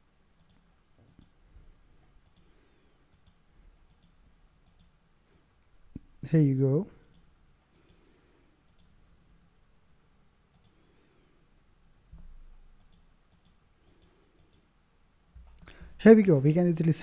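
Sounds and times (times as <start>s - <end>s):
faint computer mouse clicks: 0.4s - 1.4s, 2.2s - 2.5s, 3.1s - 4.9s, 7.0s - 8.0s, 8.6s - 8.9s, 10.5s - 10.9s, 12.8s - 14.7s.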